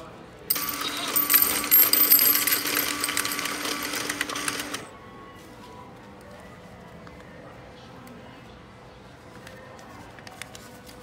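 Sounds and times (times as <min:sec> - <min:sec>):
coins rattling in rotating tray: 0:00.5 - 0:04.9.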